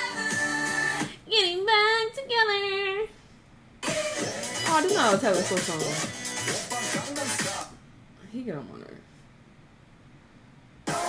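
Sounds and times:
woman singing unaccompanied: 0.0 - 3.1, 4.6 - 6.1.

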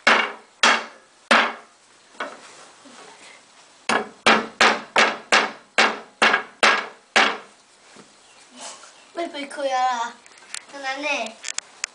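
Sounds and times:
hammer striking wood: 0.0 - 1.7, 3.9 - 7.5.

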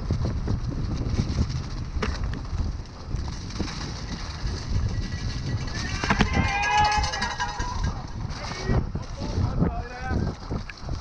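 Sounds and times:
bike tyres rumbling over dirt: 0.0 - 11.0
wind buffeting microphone: 0.0 - 11.0.

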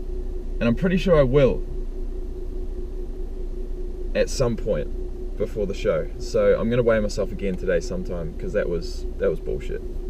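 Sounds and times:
car engine running inside cabin: 0.0 - 10.0
faint steady hum: 0.0 - 10.0.

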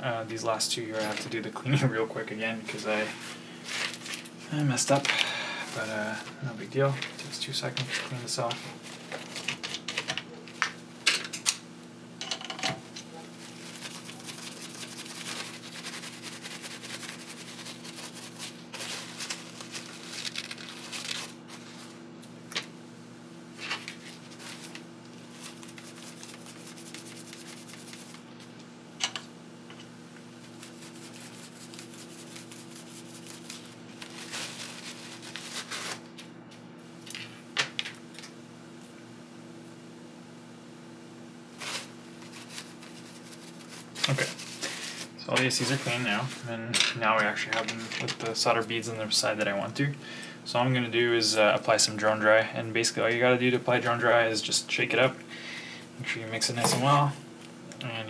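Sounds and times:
steady low hum: 0.0 - 58.0
paper towel rubbing and crinkling: 5.6 - 6.3, 13.3 - 22.0, 23.6 - 28.3, 30.4 - 36.1, 41.6 - 46.4.

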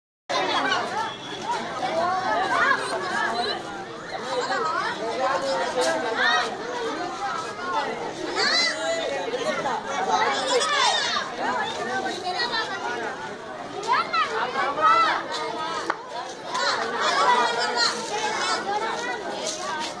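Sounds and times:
children chattering: 0.3 - 20.0.

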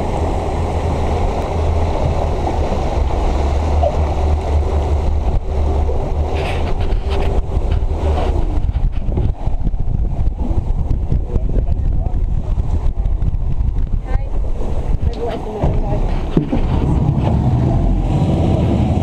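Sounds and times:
boat engine rumble: 0.0 - 19.0
water rushing along hull: 0.0 - 19.0
wind buffeting microphone: 0.0 - 19.0.

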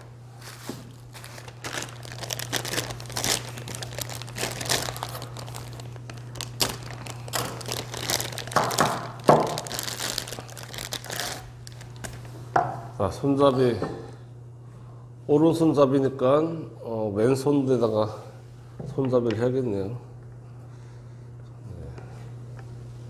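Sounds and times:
plastic packaging crinkling: 0.0 - 12.3.

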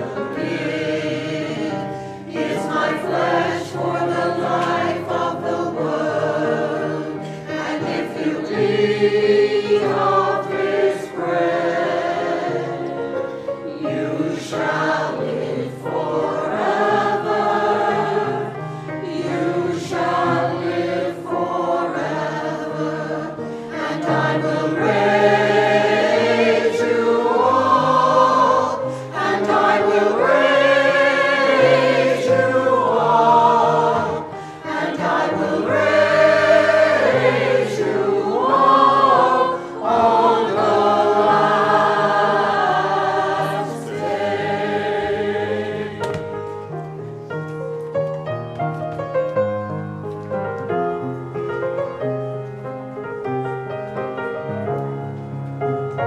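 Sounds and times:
choir singing a hymn: 0.0 - 47.1.

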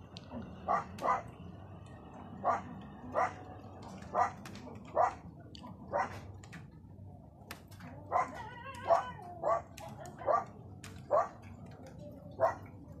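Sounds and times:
dog barking: 0.3 - 1.3, 2.4 - 2.6, 3.2 - 3.4, 4.1 - 5.2, 5.9 - 6.2, 8.1 - 11.4.

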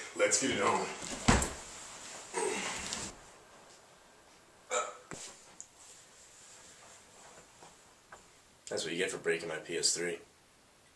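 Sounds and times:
thump in a scuffle: 1.0 - 1.7
person grunting: 2.3 - 2.8.

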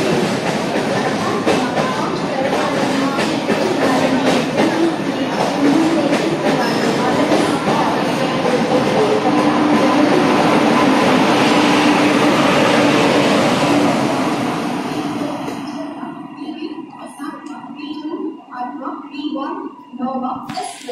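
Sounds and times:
train rumbling past: 0.0 - 20.0
electric locomotive passing: 0.0 - 20.9.

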